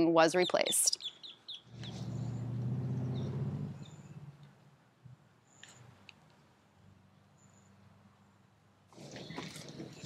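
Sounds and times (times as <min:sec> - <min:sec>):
birds chirping: 0:00.0 - 0:04.4.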